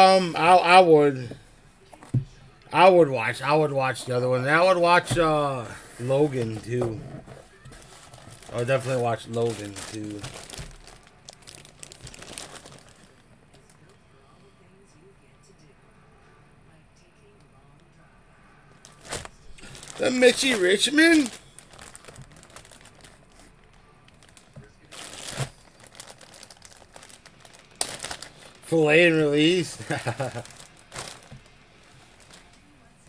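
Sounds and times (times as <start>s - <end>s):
plastic bag crinkling: 2.8s - 13.7s, 18.8s - 32.6s.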